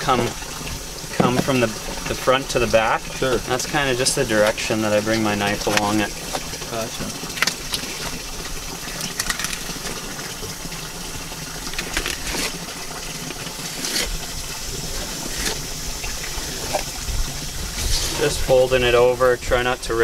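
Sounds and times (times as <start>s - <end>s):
water running from a hose: 0.0s - 20.0s.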